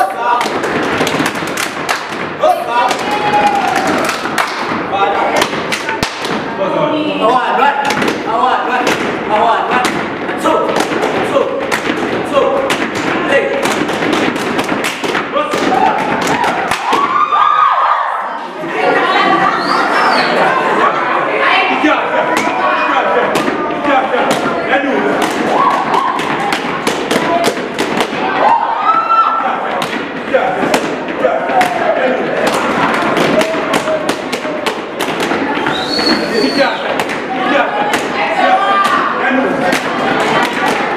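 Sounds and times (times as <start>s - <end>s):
voices: 15.3s - 40.9s.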